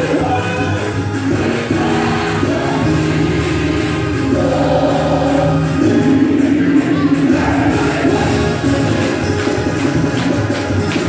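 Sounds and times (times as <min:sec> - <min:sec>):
gospel choir singing: 0:00.0 - 0:09.8.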